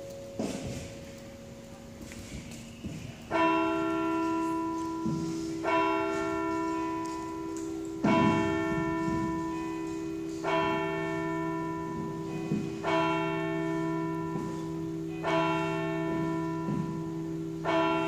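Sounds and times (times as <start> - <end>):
church bell tolling: 0.0 - 18.0.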